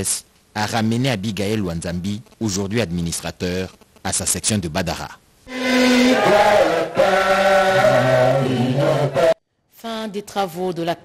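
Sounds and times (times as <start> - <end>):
crowd singing a chant: 5.5 - 9.4.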